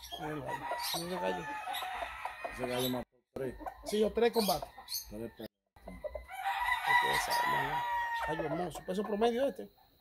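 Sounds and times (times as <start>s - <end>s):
rooster crowing: 0.2s - 2.9s, 6.2s - 8.8s.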